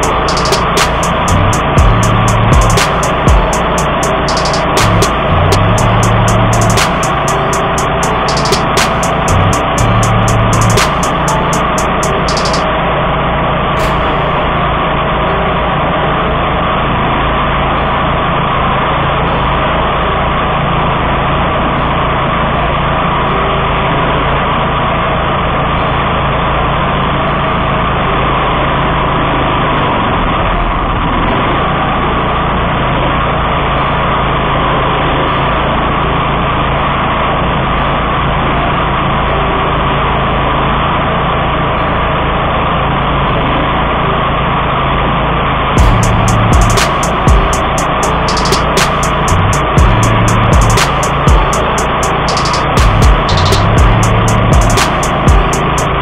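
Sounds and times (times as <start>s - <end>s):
mower engine running: 0.0s - 23.0s, 42.5s - 56.0s.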